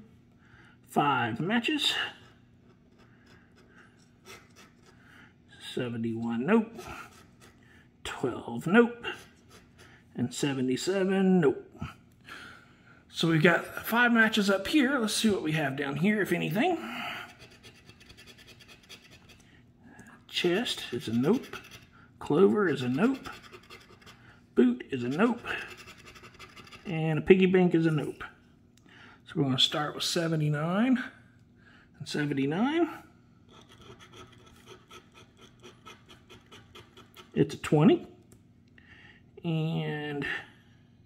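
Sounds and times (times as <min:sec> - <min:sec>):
coin scraping scratch card: 0:17.4 - 0:19.4, 0:20.7 - 0:21.9, 0:22.6 - 0:24.2, 0:25.1 - 0:26.9.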